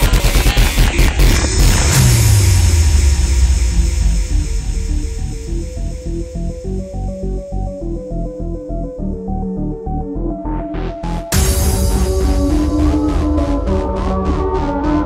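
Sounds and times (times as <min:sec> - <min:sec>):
rapidly pulsing bass: 0:00.0 - 0:15.0
deep bass note sliding down: 0:01.1 - 0:08.8, 0:10.5 - 0:15.0
stepping synth melody: 0:01.1 - 0:15.0.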